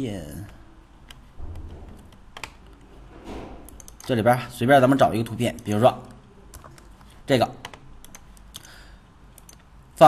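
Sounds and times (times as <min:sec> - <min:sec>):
soft low thud: 0:01.4 - 0:02.2
computer clicks: 0:03.6 - 0:04.2, 0:05.5 - 0:09.7.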